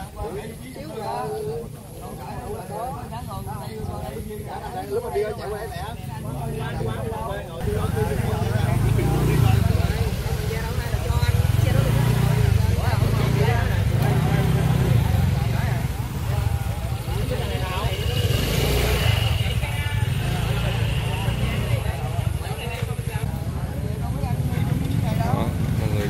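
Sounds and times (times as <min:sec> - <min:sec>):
motor scooters passing: 0:00.0 - 0:26.0.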